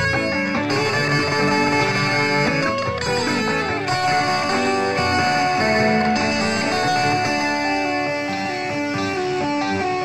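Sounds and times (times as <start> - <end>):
country music backing: 0.0 - 10.0
guitar melody: 0.0 - 10.0.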